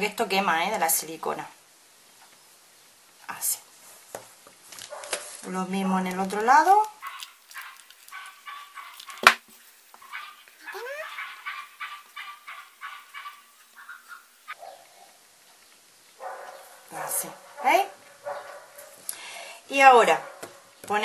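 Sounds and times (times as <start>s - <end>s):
dog yipping and whining: 10.6s - 11.8s.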